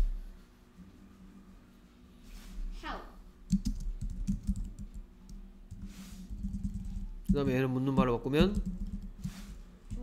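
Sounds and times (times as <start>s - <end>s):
typing on computer keyboard: 3.5s - 5.4s.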